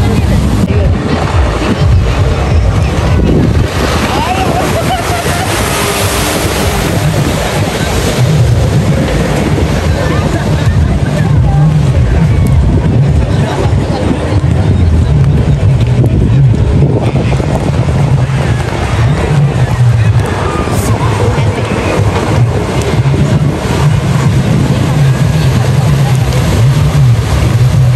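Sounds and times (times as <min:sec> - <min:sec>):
faint voices: 0:00.0 - 0:27.9
jet ski engine drone: 0:00.0 - 0:27.9
motorboat engine drone: 0:00.0 - 0:27.9
wind rumbling on microphone: 0:00.0 - 0:27.9.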